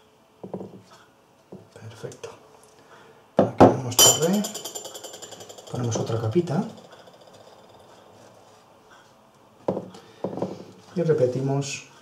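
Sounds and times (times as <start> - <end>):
crockery knocking on worktop: 3.4 - 7.9, 9.7 - 10.5.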